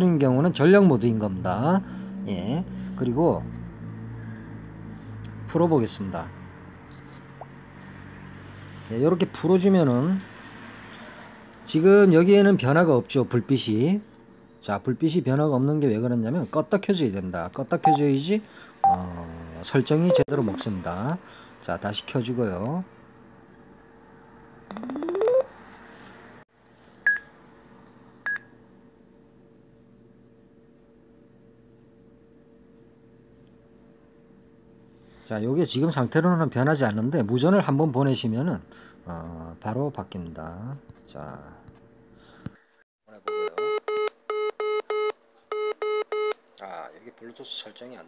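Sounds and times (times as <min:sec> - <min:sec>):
short high beeps: 0:17.8 - 0:18.1, 0:18.8 - 0:19.0, 0:20.1 - 0:20.6, 0:24.7 - 0:25.5.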